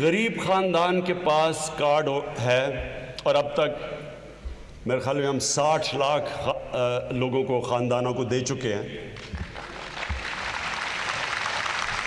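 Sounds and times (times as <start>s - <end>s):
audience clapping: 9.2s - 12.0s.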